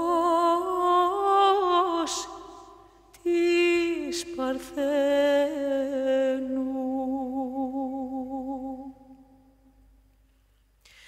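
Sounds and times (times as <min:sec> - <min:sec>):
woman singing chant with vibrato: 0:00.0 - 0:09.2.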